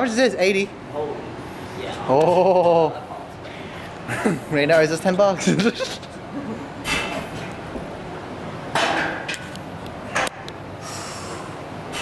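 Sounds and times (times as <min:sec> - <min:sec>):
person breathing hard: 0:10.8 - 0:11.5.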